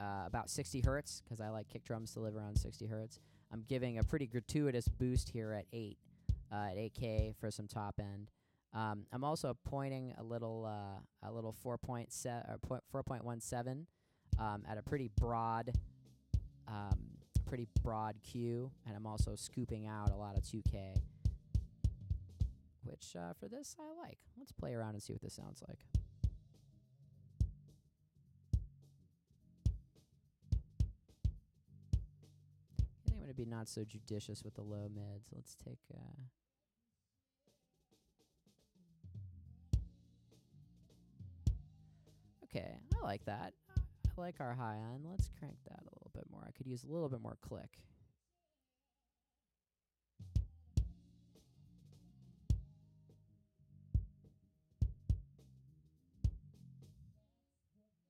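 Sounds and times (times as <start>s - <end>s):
punchy kick drum hits: 6.3s - 6.5s.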